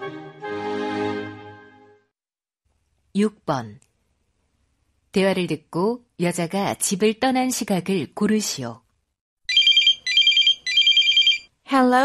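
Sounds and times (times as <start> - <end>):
electronic telephone ringing: 9.5 - 11.5.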